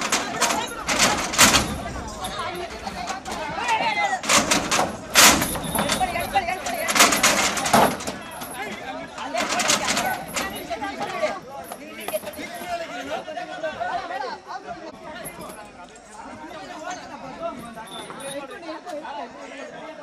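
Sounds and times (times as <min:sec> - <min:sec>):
men talking and calling out: 0:00.0 - 0:20.0.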